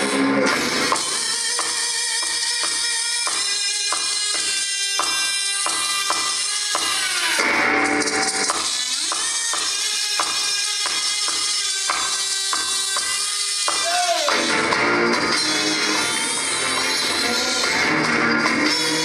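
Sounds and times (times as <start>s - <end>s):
live band music: 0.0s - 6.2s, 13.7s - 19.0s.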